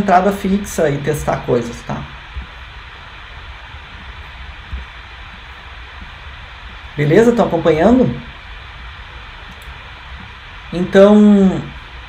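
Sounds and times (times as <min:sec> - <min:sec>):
low hum: 0:00.0 - 0:12.0
steady hiss: 0:00.0 - 0:12.0.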